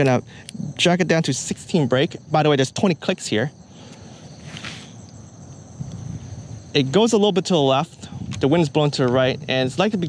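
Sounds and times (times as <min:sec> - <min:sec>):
background hiss: 0:00.0 - 0:10.0
insect drone: 0:00.0 - 0:10.0.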